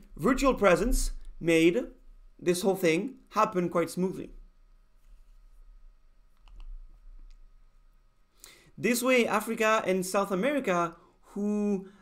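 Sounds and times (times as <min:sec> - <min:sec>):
quiet room hum: 0:00.0 - 0:12.0
faint computer clicks: 0:06.3 - 0:07.4.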